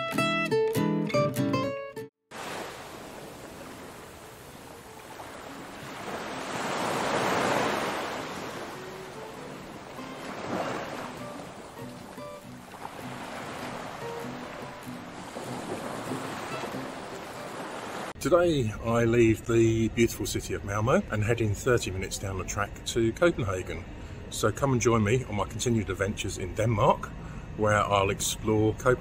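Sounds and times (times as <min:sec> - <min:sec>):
waves washing onto pebbles: 0:02.3 - 0:18.1
faint background music: 0:18.2 - 0:29.0.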